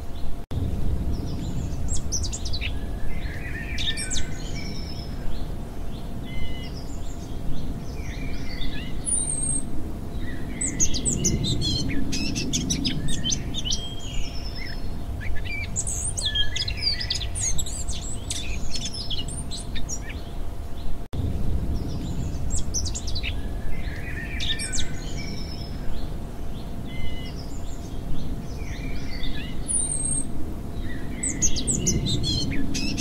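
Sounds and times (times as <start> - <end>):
faint hum: 0.0 - 33.0
low rumble: 0.1 - 33.0
birds chirping and singing: 1.1 - 21.0, 21.7 - 33.0.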